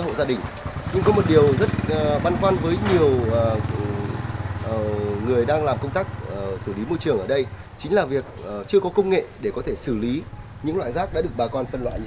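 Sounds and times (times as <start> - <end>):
tractor diesel engine idling: 0.0 - 7.8
man talking: 0.0 - 12.0.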